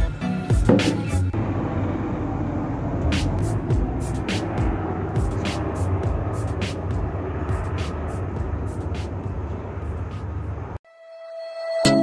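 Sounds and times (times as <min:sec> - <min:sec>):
low outdoor rumble: 0:01.0 - 0:10.8.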